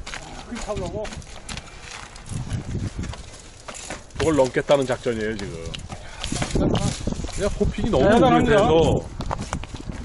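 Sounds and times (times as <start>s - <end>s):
bike rattling on rocks: 0.0s - 10.0s.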